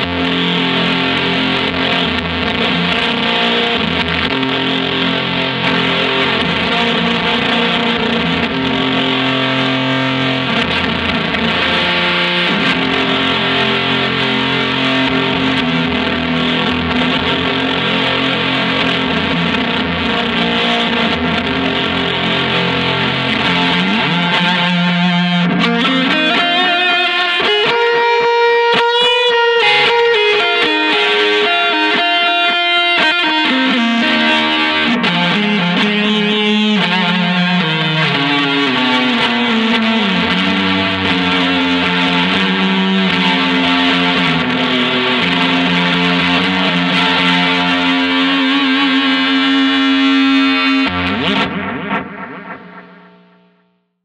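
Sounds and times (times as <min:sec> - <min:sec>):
fuzz electric guitar: 0:00.0 - 0:54.0.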